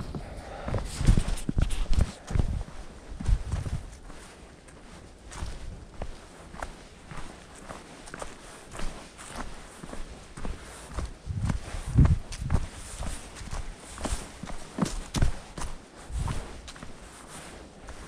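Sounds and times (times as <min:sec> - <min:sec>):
footsteps on dry leaves: 0:00.8 - 0:17.4.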